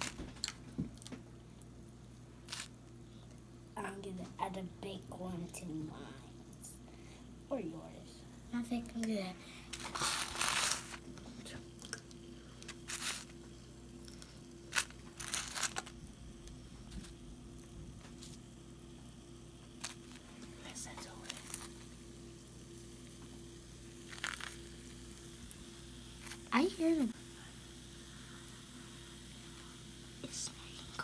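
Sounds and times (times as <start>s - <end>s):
steady low hum: 0.0s - 31.0s
crinkling handling noises: 9.7s - 18.6s, 19.8s - 21.9s, 24.0s - 25.0s.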